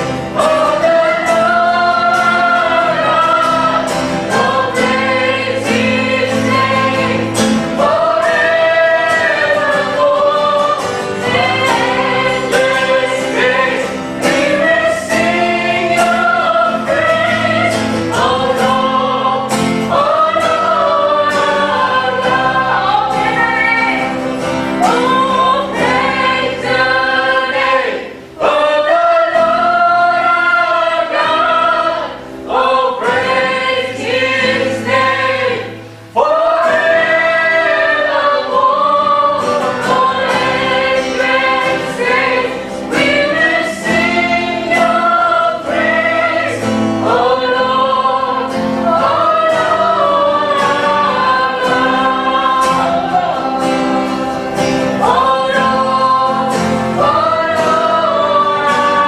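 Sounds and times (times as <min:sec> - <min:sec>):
acoustic guitar: 0:00.0 - 0:59.0
women singing worship song: 0:00.0 - 0:59.0.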